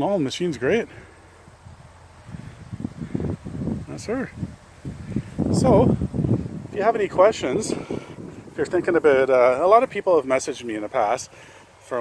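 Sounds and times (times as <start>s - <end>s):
wind rumble on microphone: 1.4s - 10.1s.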